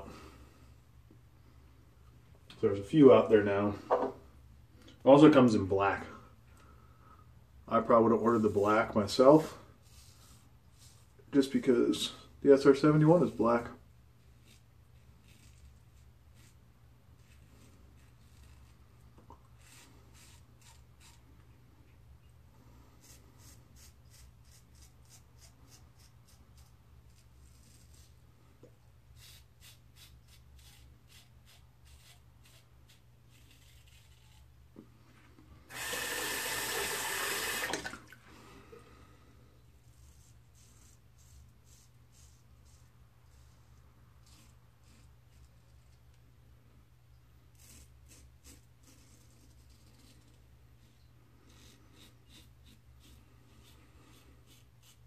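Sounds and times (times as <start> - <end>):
razor scraping stubble: 14.3 - 21.4, 23.0 - 28.2, 29.2 - 34.5, 39.8 - 46.0, 47.5 - 55.0.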